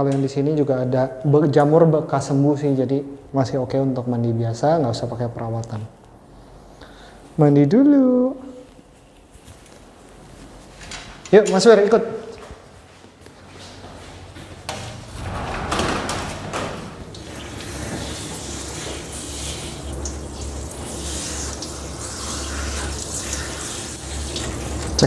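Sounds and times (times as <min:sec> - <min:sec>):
shower sprayer hissing: 0:16.5 - 0:25.0
water splashing in a tub: 0:17.1 - 0:25.0.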